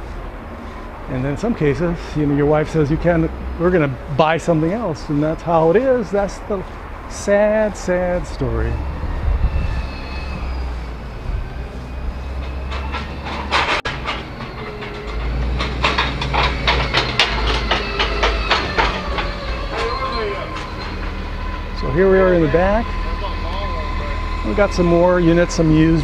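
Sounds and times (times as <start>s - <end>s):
wind rumble on microphone: 8.2s - 12.2s.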